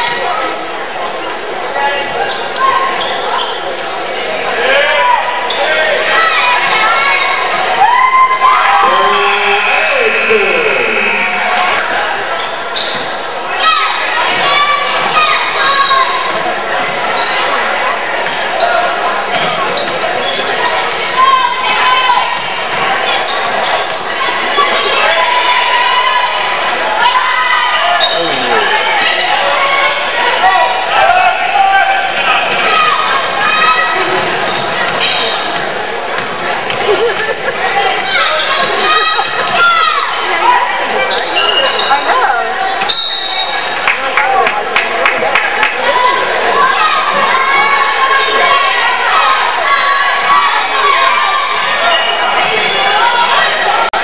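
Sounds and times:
spectators talking and calling out: 0.0 - 54.0.

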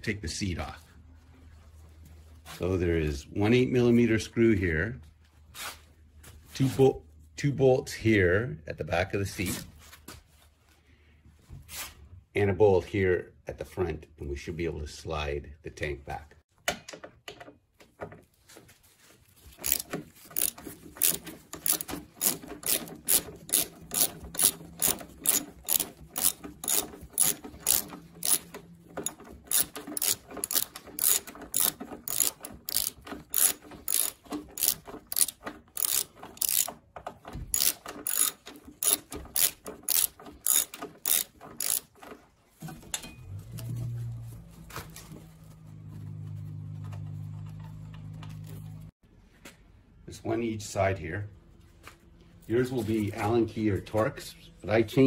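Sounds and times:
socket ratchet clicking: 19.6 - 36.8, 37.5 - 42.0.

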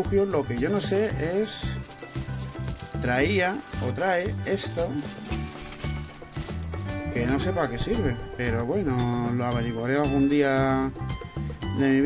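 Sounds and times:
background music: 0.0 - 12.0
plastic bag crinkling: 0.5 - 7.7.

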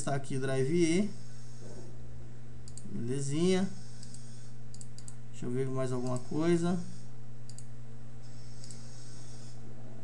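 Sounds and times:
computer mouse clicks: 2.7 - 2.9, 3.9 - 5.2, 6.0 - 6.4, 7.5 - 7.7, 8.4 - 8.8.

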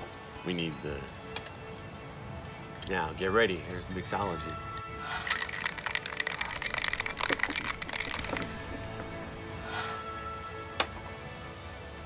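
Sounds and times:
background music: 0.0 - 12.0
ice rattling in cocktail shaker: 5.2 - 9.2.

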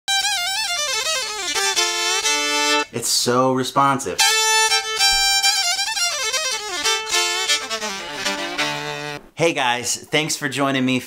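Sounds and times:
electric violin bowed solo: 0.1 - 2.9, 4.2 - 9.2.

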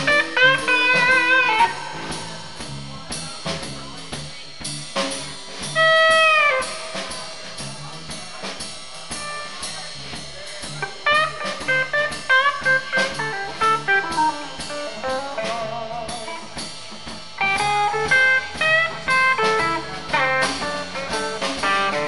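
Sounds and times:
bass and drums: 0.0 - 22.0
electric lead guitar: 0.0 - 22.0.

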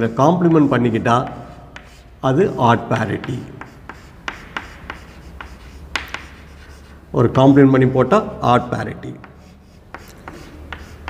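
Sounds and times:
chalk tapping and scratching: 0.0 - 7.8, 9.1 - 11.0.

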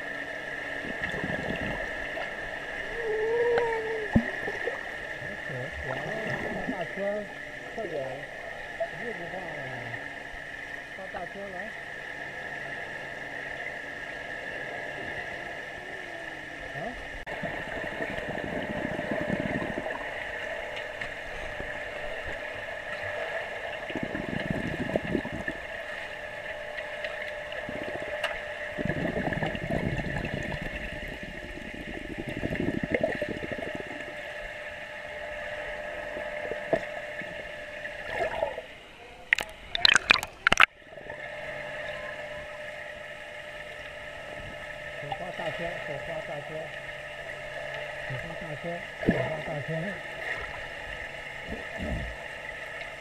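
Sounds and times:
underwater hum: 0.0 - 53.0
water churned by swimming child: 0.0 - 53.0.

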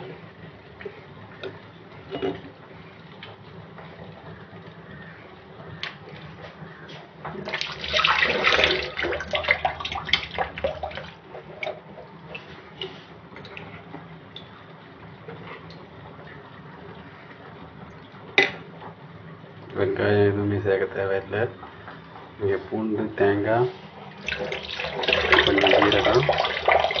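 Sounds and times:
low steady hum: 0.0 - 27.0.

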